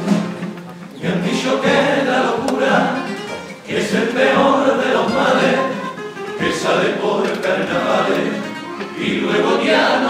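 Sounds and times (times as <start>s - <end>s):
male choir singing in harmony: 0.9s - 10.0s.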